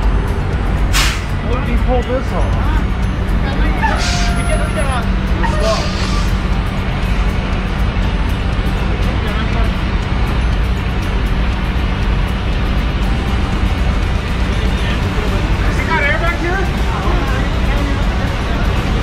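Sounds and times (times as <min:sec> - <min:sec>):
diesel truck idling: 0:00.0 - 0:19.0
faint voices: 0:14.1 - 0:19.0.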